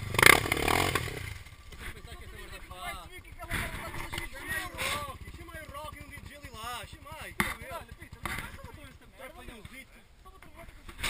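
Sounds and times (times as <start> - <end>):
dirt bike engine revving: 0.0 - 9.8.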